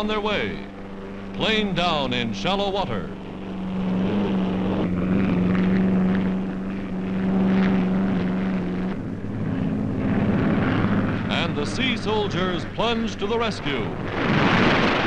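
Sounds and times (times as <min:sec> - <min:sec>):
engine drone: 0:00.0 - 0:15.0.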